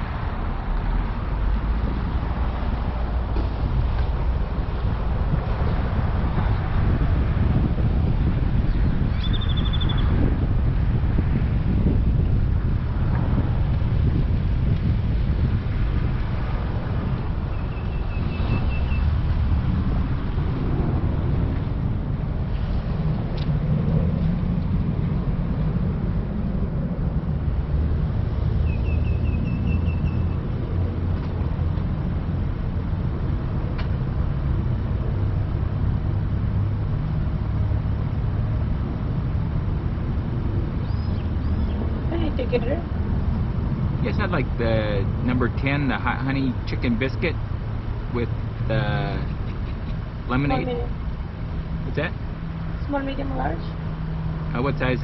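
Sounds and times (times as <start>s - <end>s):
car engine and tyres rumbling: 0.0s - 55.0s
bird trilling: 9.1s - 10.1s, 17.5s - 19.1s, 28.6s - 30.4s, 40.8s - 41.8s.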